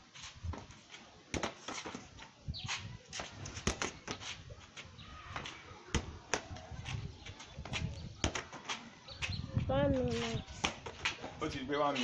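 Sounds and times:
shuffling footsteps: 0.0s - 5.7s, 6.4s - 12.0s
football kicked on concrete: 0.4s - 4.4s, 5.3s - 9.4s, 10.0s - 11.4s.

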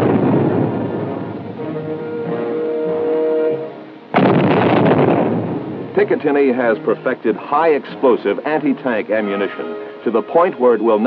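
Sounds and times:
loud explosion: 0.0s - 1.6s, 4.1s - 6.2s
music with held notes: 0.7s - 4.2s, 5.4s - 11.0s.

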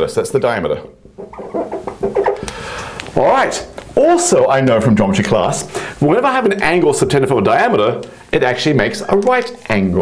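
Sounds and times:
marker squeaking on glass: 1.2s - 2.4s.

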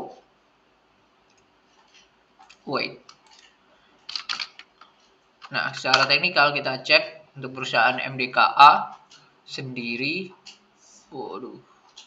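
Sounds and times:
man speaking: 2.6s - 3.1s, 5.4s - 10.4s, 11.1s - 11.6s
computer mouse clicks: 4.1s - 6.1s.

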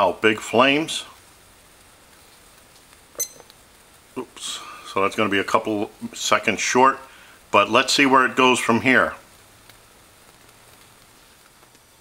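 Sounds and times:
stove burner hissing: 0.0s - 12.0s.

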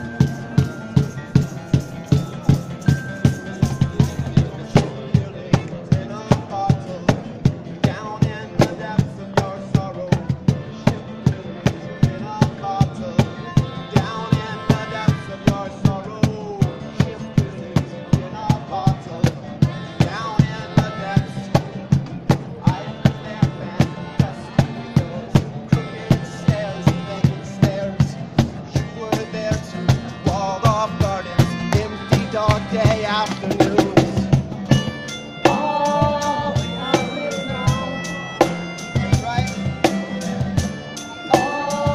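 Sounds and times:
melodica melody: 0.0s - 4.9s, 12.3s - 17.8s, 22.6s - 41.9s
cajon beat: 0.0s - 41.9s
strummed acoustic guitar: 0.0s - 41.9s.

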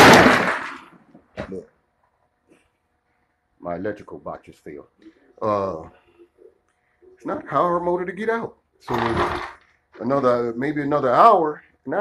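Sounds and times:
loud crash: 0.0s - 0.9s
man speaking: 3.6s - 6.2s, 7.0s - 9.1s, 9.9s - 12.0s.

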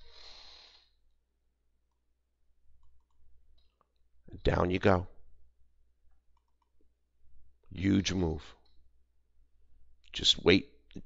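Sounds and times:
soft breath: 0.0s - 1.0s.

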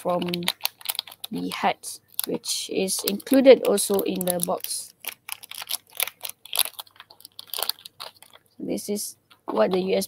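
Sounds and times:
anti-static bag crackling: 0.0s - 10.0s.

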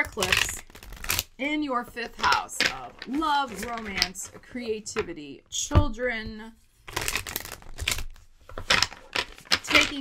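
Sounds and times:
cards being shuffled: 0.0s - 5.1s, 6.7s - 10.0s.

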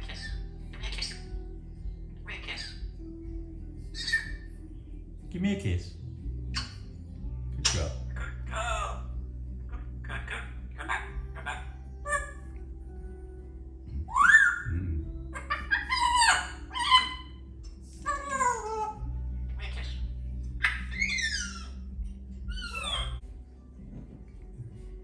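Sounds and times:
steady low hum: 8.1s - 15.5s
parrot whistling calls: 14.0s - 17.3s, 20.6s - 21.8s, 22.5s - 23.2s.

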